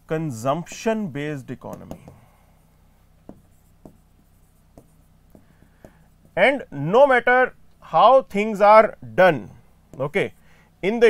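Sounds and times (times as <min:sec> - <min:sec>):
low steady hum: 0:00.0 - 0:11.0
stylus tapping on touchscreen: 0:01.6 - 0:02.3, 0:03.2 - 0:06.4.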